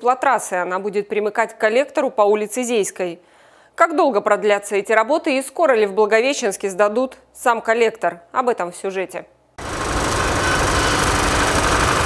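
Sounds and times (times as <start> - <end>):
welding arc crackling hiss: 9.6 - 12.0.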